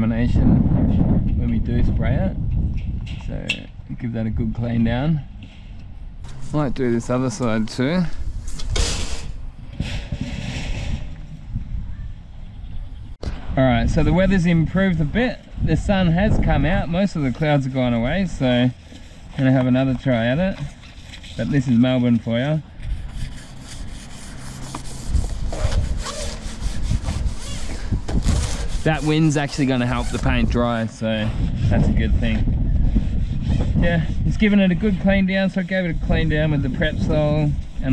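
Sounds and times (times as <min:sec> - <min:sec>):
wind rumble on microphone: 0:00.0 - 0:37.9
cloth wiping metal door: 0:16.9 - 0:31.2, 0:33.1 - 0:37.9
abrasive pad scrubbing metal: 0:16.9 - 0:32.1, 0:32.9 - 0:37.9.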